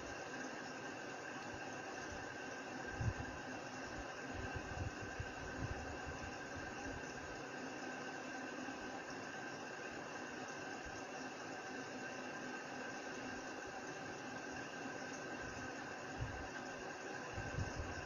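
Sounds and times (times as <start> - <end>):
faint hum: 0.0 - 18.0.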